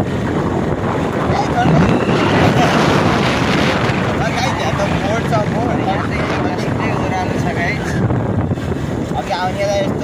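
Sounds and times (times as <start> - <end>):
wind rushing over microphone: 0.0 - 10.0
whistle-like tones: 1.6 - 2.4.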